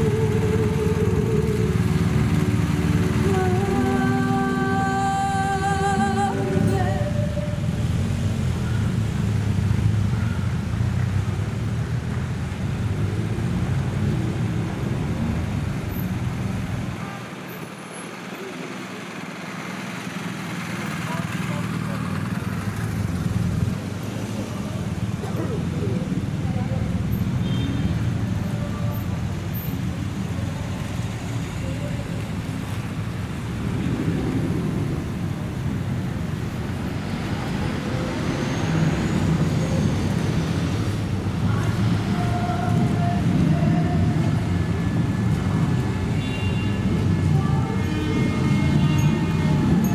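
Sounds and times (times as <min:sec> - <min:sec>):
motorcycles and vehicles rolling past: 0:00.0 - 0:49.9
onlookers' voices: 0:18.2 - 0:27.4, 0:28.1 - 0:34.7.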